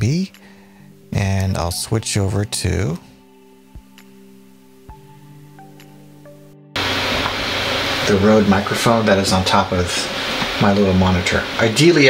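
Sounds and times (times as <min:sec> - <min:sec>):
computer fan hiss: 0:06.8 - 0:12.0.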